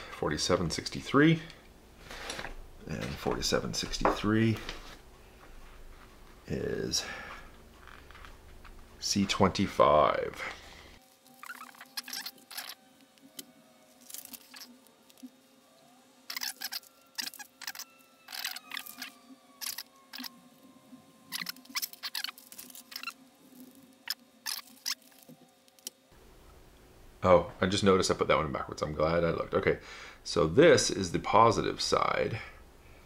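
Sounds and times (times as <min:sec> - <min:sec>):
faint steady hum: 0:00.0 - 0:33.0
plastic bags crinkling: 0:11.0 - 0:12.9, 0:13.9 - 0:15.3, 0:16.3 - 0:20.4, 0:21.3 - 0:25.4.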